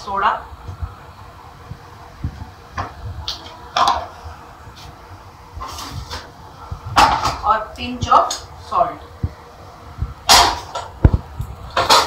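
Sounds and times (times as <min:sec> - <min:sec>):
metal lid clanking: 0:11.7 - 0:12.0.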